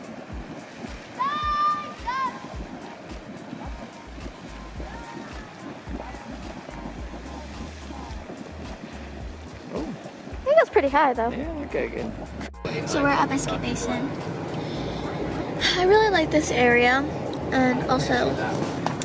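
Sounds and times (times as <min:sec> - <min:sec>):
geyser water splashing: 0:00.0 - 0:19.0.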